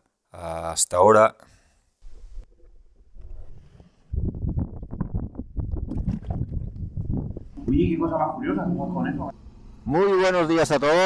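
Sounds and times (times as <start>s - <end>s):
wind buffeting microphone: 3.2s - 8.1s.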